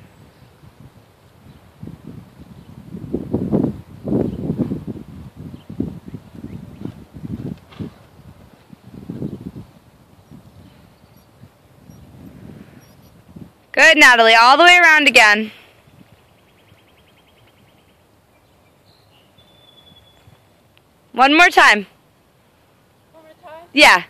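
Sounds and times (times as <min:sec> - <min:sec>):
horse hoofbeats on sand: 0:06.2 - 0:09.8.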